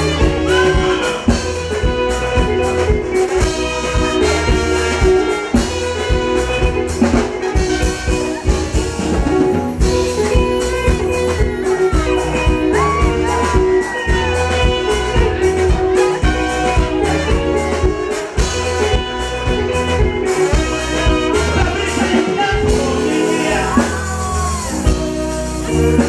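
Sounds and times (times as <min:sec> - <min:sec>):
drums dance beat: 0:00.0 - 0:25.2
bass: 0:00.0 - 0:26.0
trombone: 0:00.0 - 0:26.0
trumpet: 0:00.0 - 0:26.0.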